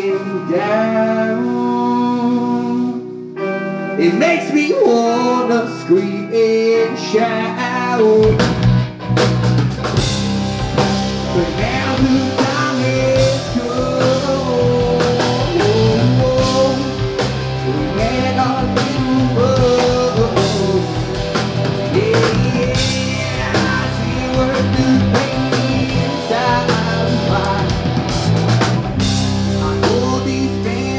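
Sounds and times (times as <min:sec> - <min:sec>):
electric guitars: 0:00.0 - 0:30.9
drum kit: 0:06.9 - 0:30.9
electric bass: 0:07.1 - 0:30.9.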